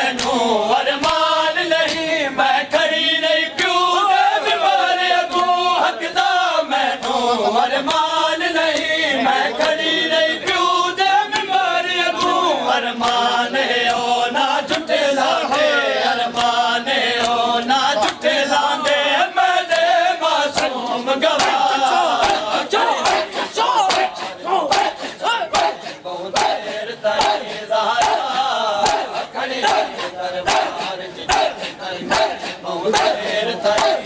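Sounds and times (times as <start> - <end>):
men chanting a lament: 0.0 - 34.0
chest-beating slaps: 20.6 - 34.0.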